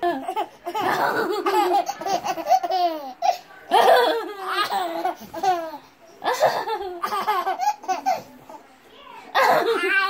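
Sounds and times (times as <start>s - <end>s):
baby laughing: 0.0s - 8.3s.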